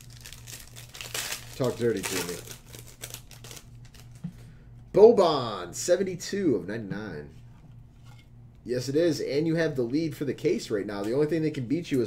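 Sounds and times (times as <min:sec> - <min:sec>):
steady low hum: 0:00.0 - 0:12.0
trading cards clicking and rustling: 0:00.2 - 0:04.2.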